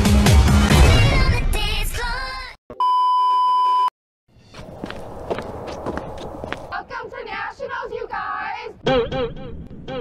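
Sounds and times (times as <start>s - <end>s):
electronic censor bleep: 2.8s - 3.9s.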